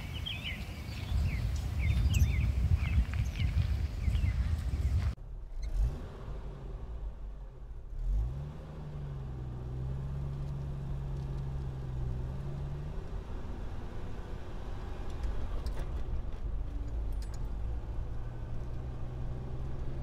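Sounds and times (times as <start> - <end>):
road rumble: 0.0 - 20.0
car engine accelerating: 0.2 - 20.0.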